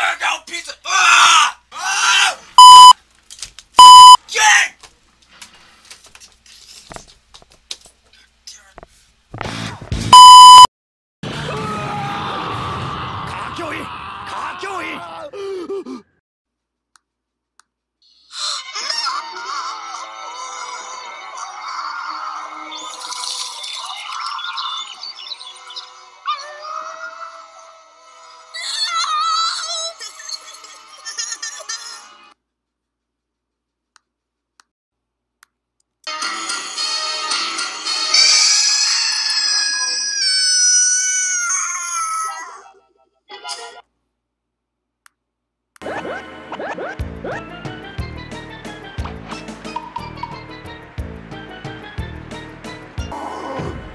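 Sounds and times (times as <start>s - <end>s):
censor beeps: 2.6s - 3.0s, 3.8s - 4.2s, 10.1s - 10.7s
comic sound effects: 2.6s - 3.0s, 10.1s - 10.7s
girl screaming: 39.6s - 42.6s.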